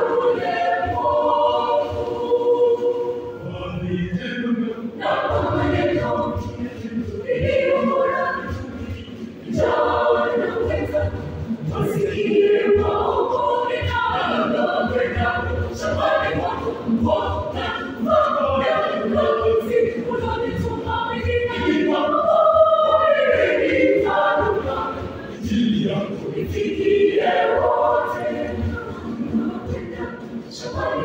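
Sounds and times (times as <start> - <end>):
youth choir singing: 0.0 - 31.0.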